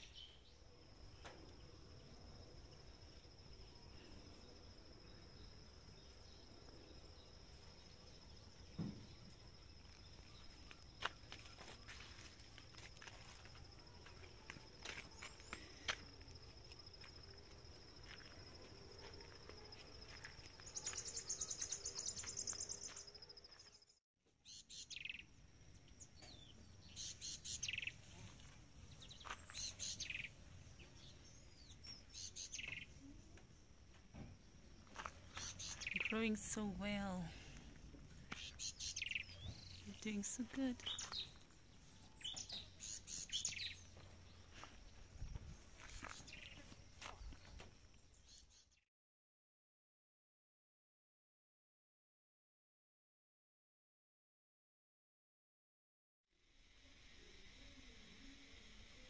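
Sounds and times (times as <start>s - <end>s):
birds chirping: 20.0s - 23.9s, 26.0s - 33.5s, 34.6s - 37.4s, 38.2s - 48.8s
rapid insect trill: 34.8s - 36.2s, 56.4s - 59.0s.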